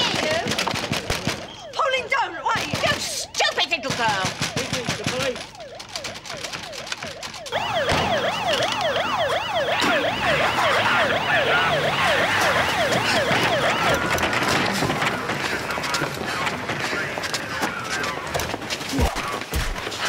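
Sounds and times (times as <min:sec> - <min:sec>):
police siren yelping: 0:00.0 - 0:19.7
higher siren: 0:01.4 - 0:03.8, 0:04.5 - 0:18.6.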